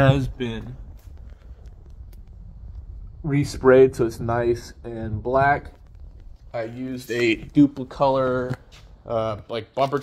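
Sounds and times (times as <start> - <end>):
steady low rumble: 0.0 - 9.8.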